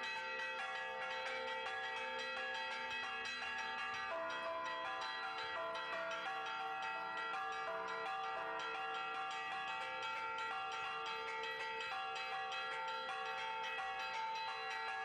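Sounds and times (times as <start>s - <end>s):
church bells pealing: 0.0s - 15.0s.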